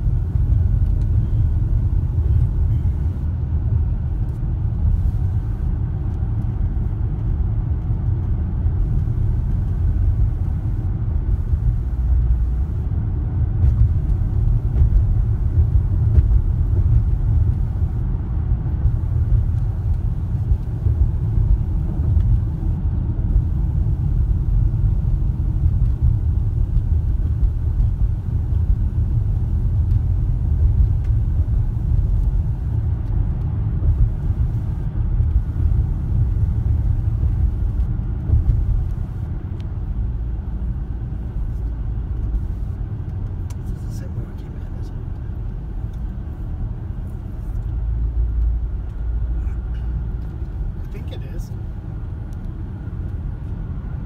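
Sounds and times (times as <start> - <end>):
car driving heard from inside: 0.0 - 54.0.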